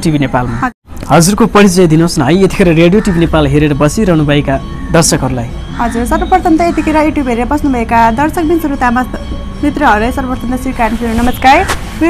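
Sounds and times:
young woman talking: 5.8s - 12.0s.

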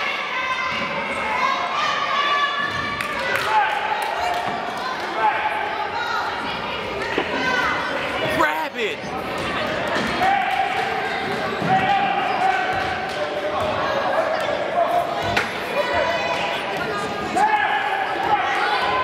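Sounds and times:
spectators' voices: 0.0s - 19.0s.

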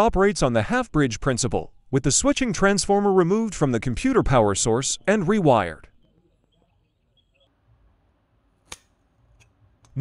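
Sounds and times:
sharp click: 8.7s - 10.0s.

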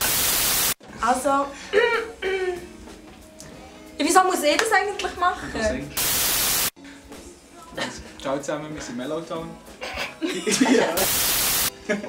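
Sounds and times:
loud static hiss: 0.0s - 0.8s, 6.0s - 6.8s, 11.0s - 11.8s.

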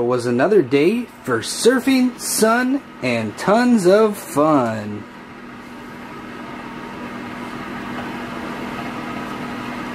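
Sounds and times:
mechanical hum: 0.0s - 9.9s.

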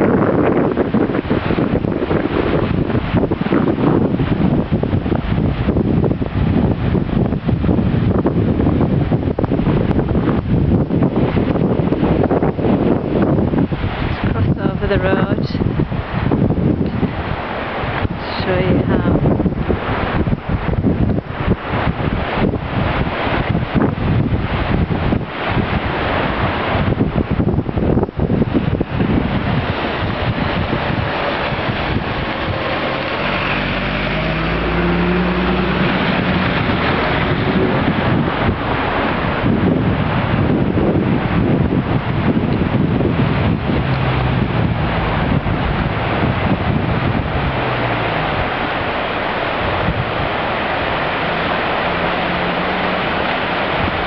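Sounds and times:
river rushing and churning: 0.0s - 54.0s
wind buffeting microphone: 0.0s - 54.0s.

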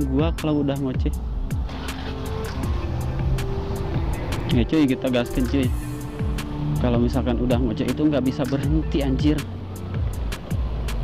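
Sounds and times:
background music with steady beat: 0.0s - 11.0s
motorcycle engine pulling away: 1.5s - 8.4s.

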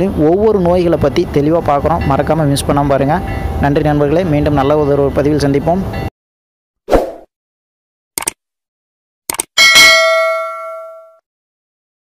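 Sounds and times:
bright bell ding: 9.6s - 11.2s.

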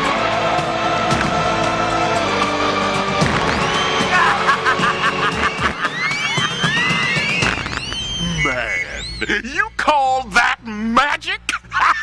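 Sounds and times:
soundtrack music: 0.0s - 8.6s
swooping whistle-like effects: 3.3s - 9.3s.

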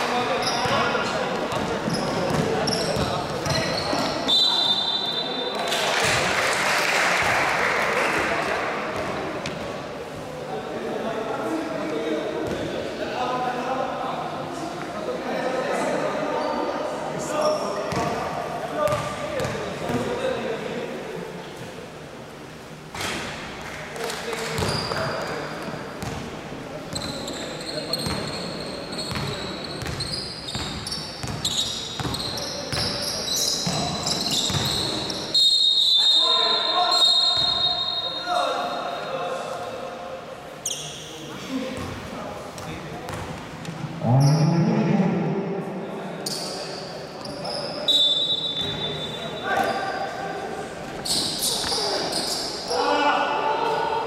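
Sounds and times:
voices echoing in gym: 0.0s - 54.0s
sneakers squeaking on floor: 0.2s - 6.2s, 16.4s - 16.7s, 17.3s - 18.2s, 18.8s - 20.1s, 24.5s - 26.3s, 26.9s - 39.1s, 40.6s - 42.0s, 46.2s - 50.2s, 50.8s - 52.8s
ball bouncing on hardwood court: 1.5s - 4.0s.

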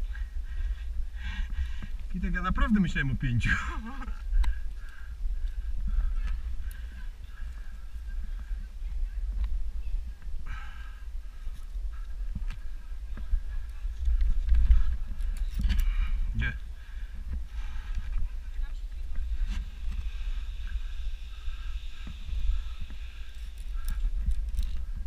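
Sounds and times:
wind rumble on microphone: 0.0s - 25.0s.

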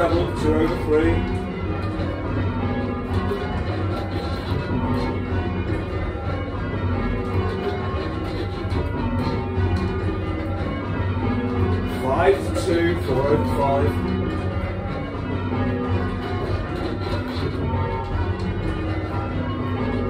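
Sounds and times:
church bells ringing: 0.0s - 20.0s.

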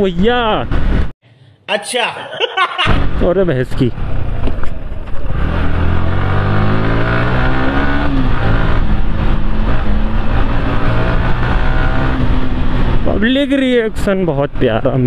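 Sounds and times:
motorcycle engine accelerating: 2.9s - 13.8s.

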